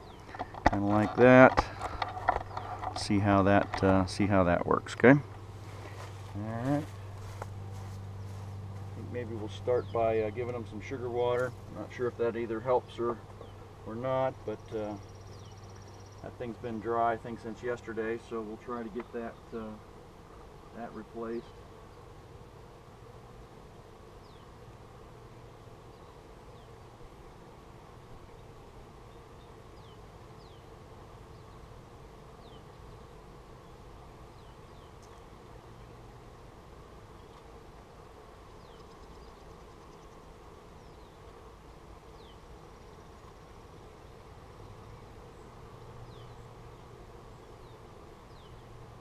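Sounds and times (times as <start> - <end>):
honey bees buzzing: 0.0 - 49.0.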